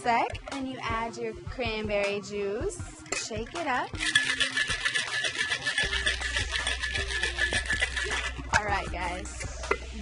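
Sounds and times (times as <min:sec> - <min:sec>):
background music: 0:00.0 - 0:10.0
ice rattling in cocktail shaker: 0:03.4 - 0:08.7.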